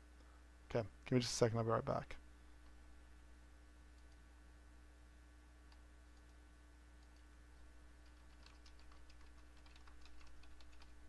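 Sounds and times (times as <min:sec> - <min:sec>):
low steady hum: 0:00.0 - 0:11.0
typing on computer keyboard: 0:08.0 - 0:11.0.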